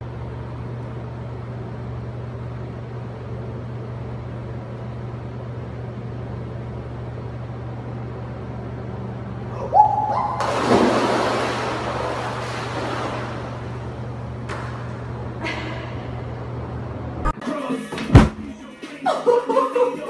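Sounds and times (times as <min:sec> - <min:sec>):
steady low hum: 0:00.0 - 0:17.4
loud splash into pool: 0:10.3 - 0:13.8.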